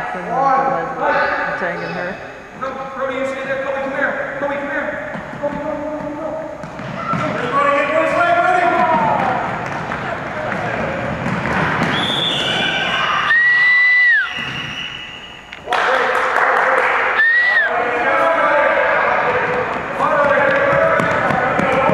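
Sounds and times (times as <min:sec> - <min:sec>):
children shouting: 0:12.4 - 0:13.6
running feet on wooden floor: 0:19.6 - 0:21.9.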